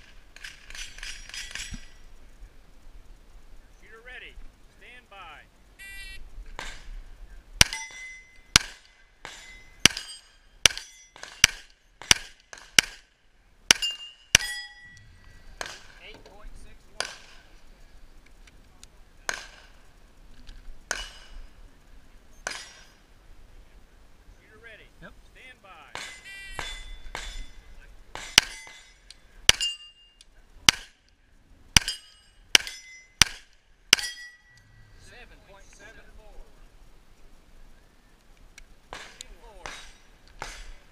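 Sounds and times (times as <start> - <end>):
short electronic beep: 5.8 - 6.2, 26.2 - 27.0
steel targets ringing: 7.6 - 13.0, 13.7 - 16.0, 22.4 - 23.0, 25.9 - 30.9, 31.8 - 35.2.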